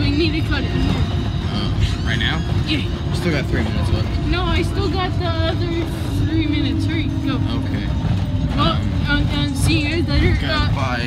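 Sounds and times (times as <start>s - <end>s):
bus engine rumble: 0.0s - 11.0s
voices chattering: 0.0s - 11.0s.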